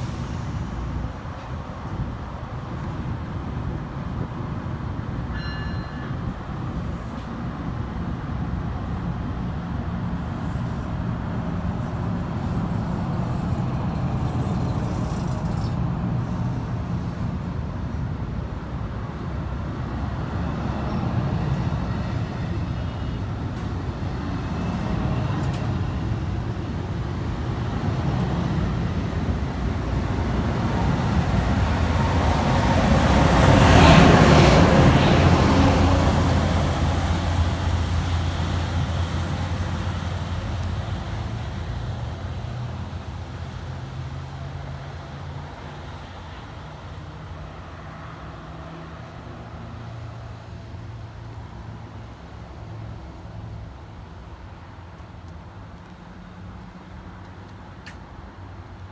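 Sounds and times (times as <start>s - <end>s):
locomotive engine hum: 0.0s - 58.9s
train wheel and rail noise: 0.0s - 58.9s.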